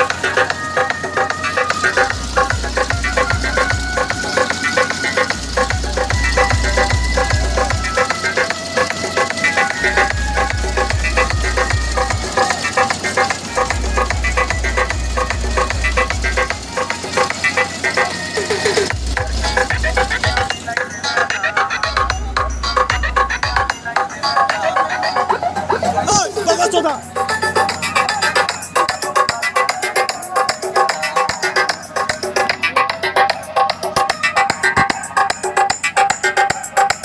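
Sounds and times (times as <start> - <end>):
music melody: 0.0 - 37.0
deep bass beat: 18.8 - 20.6, 21.8 - 23.8.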